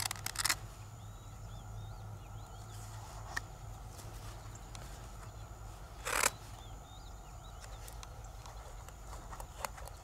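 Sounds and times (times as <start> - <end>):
mussel shells clicking: 0.0 - 0.6.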